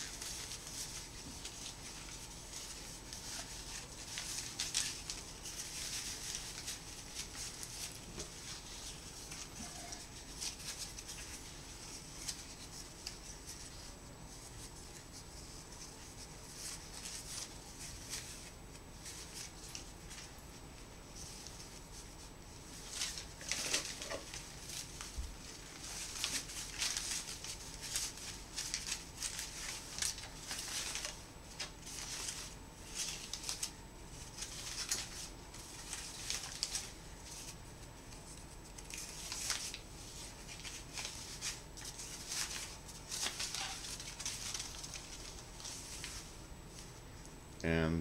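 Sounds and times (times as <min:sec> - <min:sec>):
ribbon rustling and crinkling: 0:00.0 - 0:47.2.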